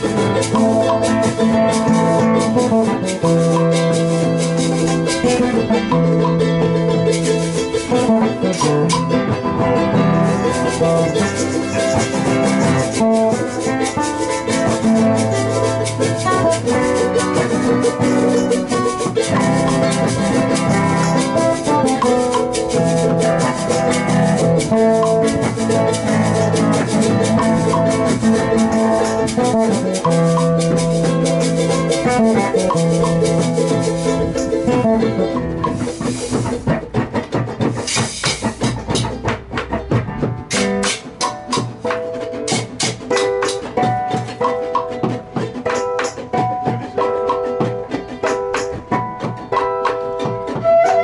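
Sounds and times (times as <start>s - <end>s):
acoustic guitar strummed: 0.0s - 51.0s
charango strummed: 0.0s - 51.0s
hand drum: 0.0s - 51.0s
held melody line: 0.0s - 51.0s
stick percussion: 0.0s - 51.0s.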